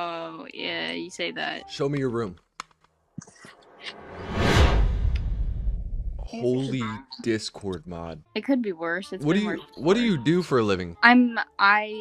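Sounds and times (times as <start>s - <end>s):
low rumble: 3.9s - 6.4s.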